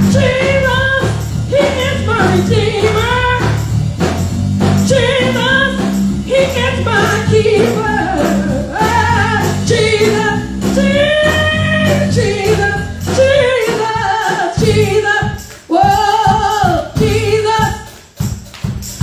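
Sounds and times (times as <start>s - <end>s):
woman singing gospel song: 0.0s - 3.7s, 4.9s - 18.0s
band playing low chords: 0.0s - 14.0s, 14.6s - 15.5s.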